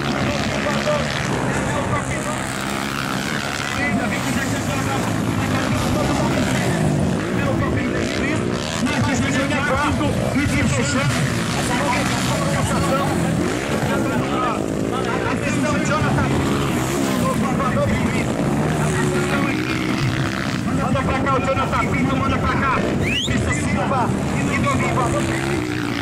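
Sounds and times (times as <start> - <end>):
motocross engines revving: 0.0 - 26.0.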